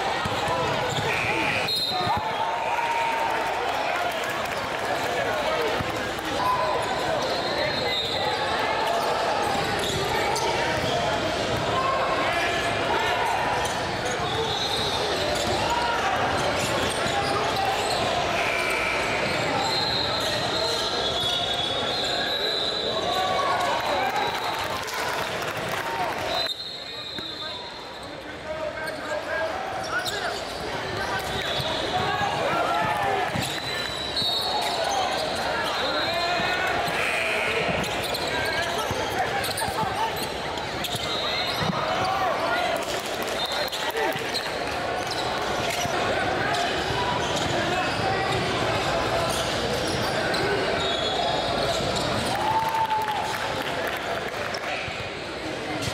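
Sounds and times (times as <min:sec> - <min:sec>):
chatter of players and spectators: 0:00.0 - 0:55.9
sneaker squeaks: 0:00.2 - 0:02.4, 0:05.9 - 0:11.7, 0:13.6 - 0:23.7, 0:26.3 - 0:42.4, 0:43.0 - 0:52.3.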